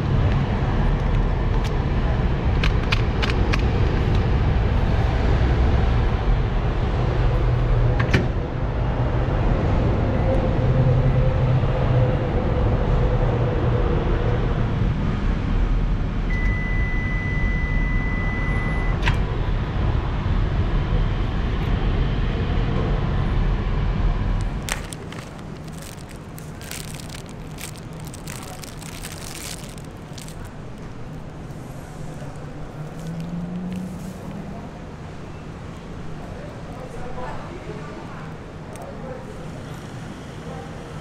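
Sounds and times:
street traffic rumble: 0:00.0 - 0:16.4, 0:17.9 - 0:41.0.

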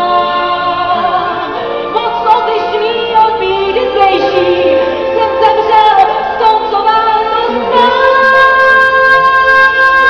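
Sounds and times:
music: 0:00.0 - 0:10.0
woman singing: 0:00.0 - 0:10.0.

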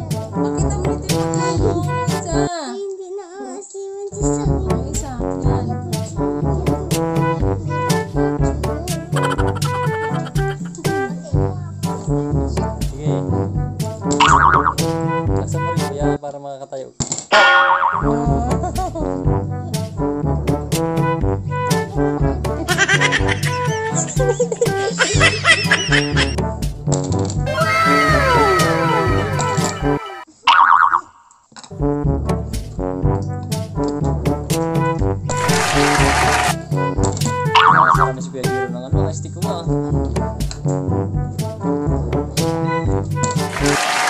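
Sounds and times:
background music: 0:00.0 - 0:02.8, 0:04.1 - 0:16.2, 0:17.3 - 0:30.3, 0:31.7 - 0:44.0
cartoon boing sound effect: 0:09.2 - 0:10.6, 0:14.2 - 0:14.8, 0:17.3 - 0:18.3, 0:29.2 - 0:31.2, 0:37.5 - 0:38.1
warbling cartoon sound effect: 0:14.2 - 0:14.8, 0:17.3 - 0:18.2, 0:25.4 - 0:26.4, 0:27.5 - 0:31.1, 0:35.4 - 0:36.6, 0:37.6 - 0:38.1.

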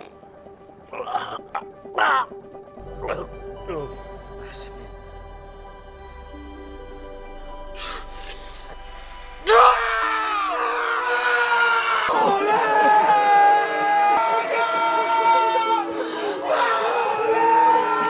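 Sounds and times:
film music: 0:00.0 - 0:18.0.

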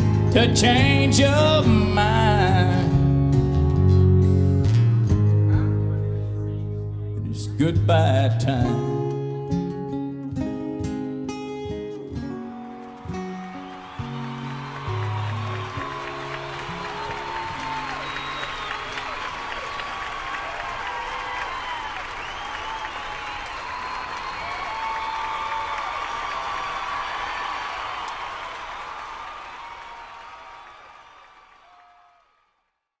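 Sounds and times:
audience applauding and cheering: 0:12.2 - 0:32.6
whoops: 0:12.5 - 0:32.4.

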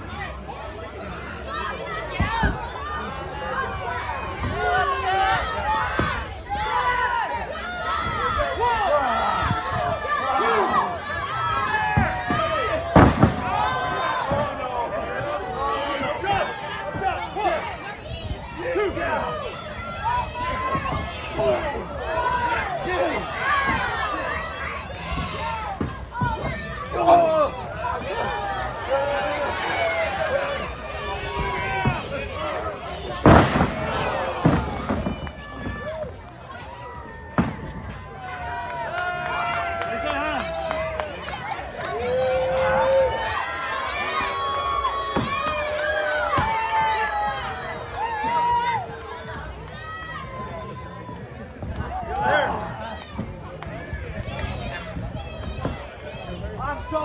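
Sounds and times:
crowd shouting and cheering: 0:00.0 - 0:57.0.

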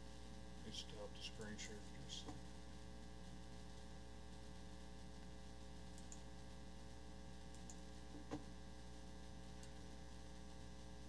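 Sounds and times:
faint electrical mains hum: 0:00.0 - 0:11.0
faint clicks: 0:05.9 - 0:06.3, 0:07.5 - 0:08.4.

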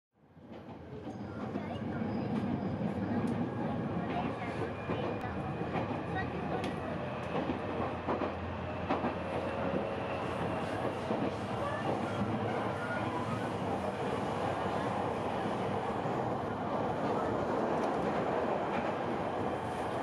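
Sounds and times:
train carriage rumble and rattle: 0:00.3 - 0:20.0
faint voices: 0:01.0 - 0:20.0.

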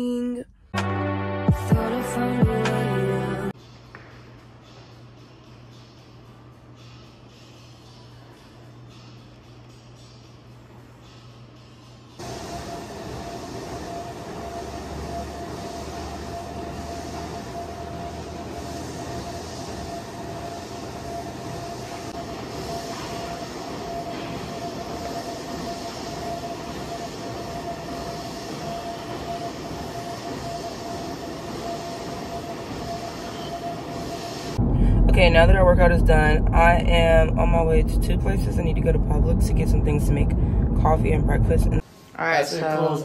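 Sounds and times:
gym machines running: 0:02.8 - 0:41.9.

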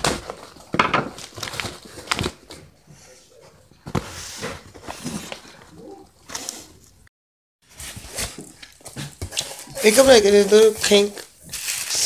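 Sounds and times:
cardboard and paper rustling: 0:00.0 - 0:02.7, 0:03.8 - 0:06.6, 0:07.7 - 0:12.0.

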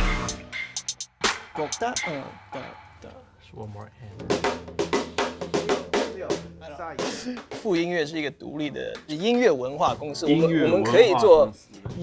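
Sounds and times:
drum kit hits: 0:00.0 - 0:03.0, 0:04.2 - 0:08.1.

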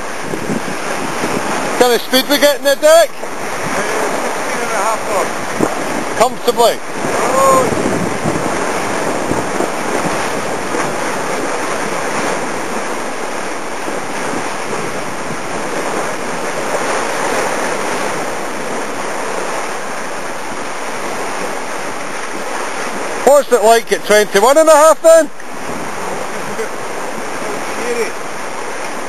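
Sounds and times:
water rushing past hulls: 0:00.0 - 0:29.0
wind buffeting microphone: 0:00.0 - 0:29.0.

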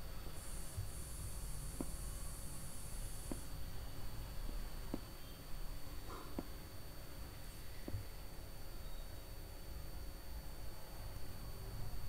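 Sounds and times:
faint high hiss: 0:00.0 - 0:09.5
low steady hum: 0:00.0 - 0:12.0.

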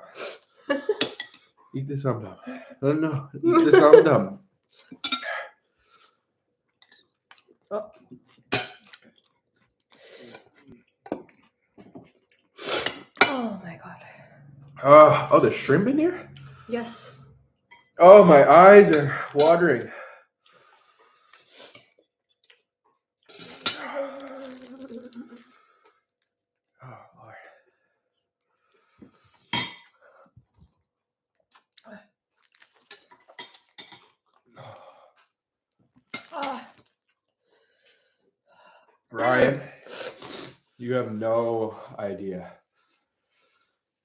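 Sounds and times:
voices and breathy reactions: 0:00.0 - 0:04.4, 0:13.1 - 0:21.7, 0:23.4 - 0:26.0
cutlery clinking on ceramic plates: 0:04.9 - 0:05.4.

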